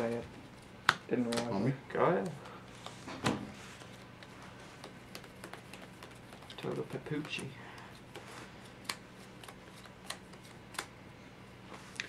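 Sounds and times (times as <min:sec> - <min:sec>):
plastic card sleeves clicking: 0:04.1 - 0:07.5, 0:08.8 - 0:10.9.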